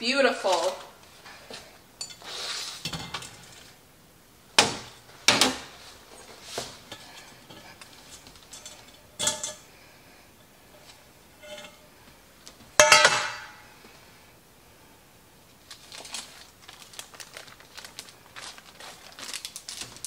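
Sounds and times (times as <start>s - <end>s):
short scrape: 2.2s - 2.9s
metal cake pans clanking on racks: 8.4s - 9.7s, 12.8s - 13.6s.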